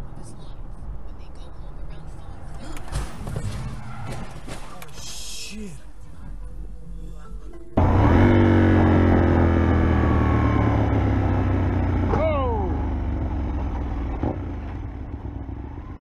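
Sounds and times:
motorcycle engine running: 7.8s - 16.0s.

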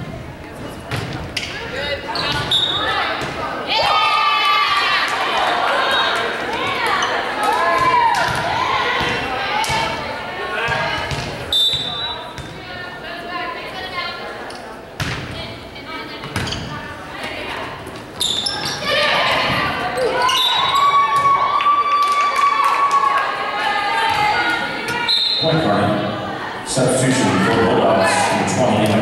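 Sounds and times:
players shouting: 2.0s - 11.5s, 18.4s - 29.0s
sneakers squeaking on hardwood: 2.1s - 3.4s, 16.2s - 21.3s
volleyball hits: 6.1s - 12.7s, 18.3s - 21.5s, 24.0s - 25.1s.

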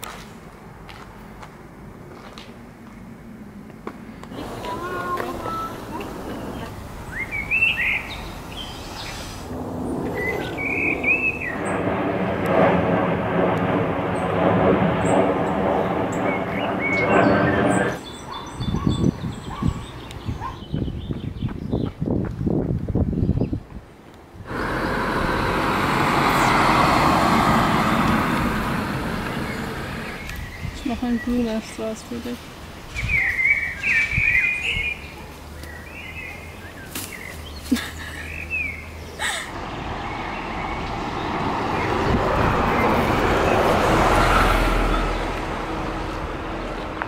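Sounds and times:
passing traffic engines: 0.0s - 21.3s, 23.9s - 47.0s
small birds chirping: 4.2s - 9.4s, 10.1s - 11.8s, 16.1s - 22.2s, 29.0s - 39.4s
car going by: 4.3s - 18.6s, 24.4s - 31.0s, 38.2s - 47.0s.

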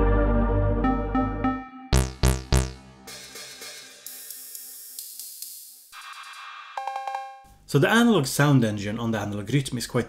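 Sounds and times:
drum machine hi-hat hits: 1.9s - 7.4s.

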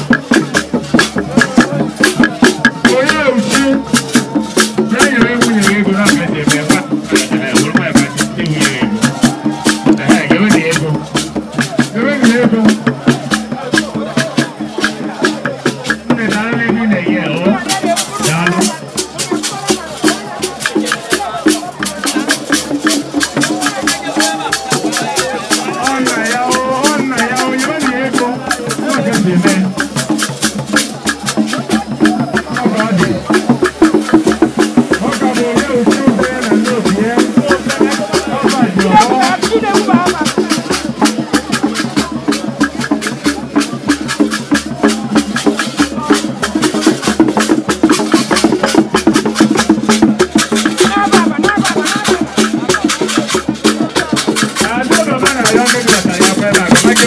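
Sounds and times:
struck wood percussion: 0.0s - 57.0s
voices singing or calling: 0.0s - 57.0s.

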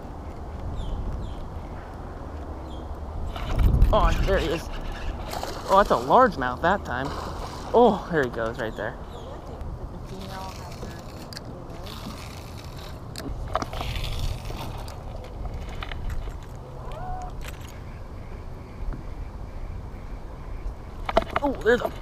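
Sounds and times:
wind buffeting microphone: 0.0s - 6.4s.

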